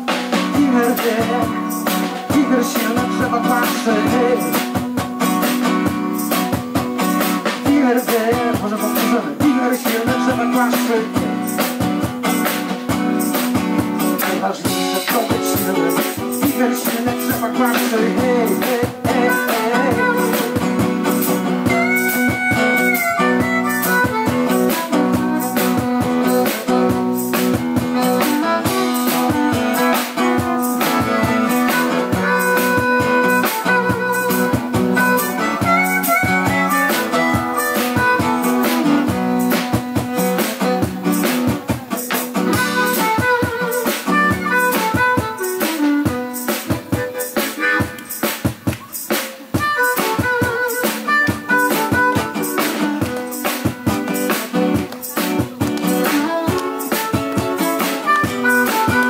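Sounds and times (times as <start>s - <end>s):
acoustic guitar strumming: 0.0s - 59.0s
harmonica melody: 15.0s - 48.4s, 49.5s - 59.0s.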